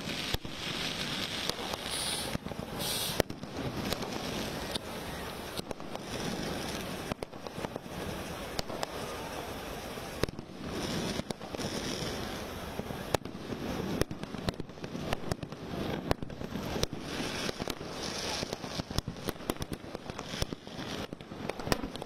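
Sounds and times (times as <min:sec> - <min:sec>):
spark fountains rushing: 0:00.0 - 0:14.0
firecracker bangs: 0:00.0 - 0:22.0.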